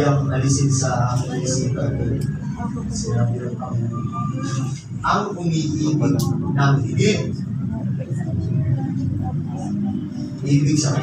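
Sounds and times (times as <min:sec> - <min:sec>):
muffled speech: 0:00.0 - 0:11.0.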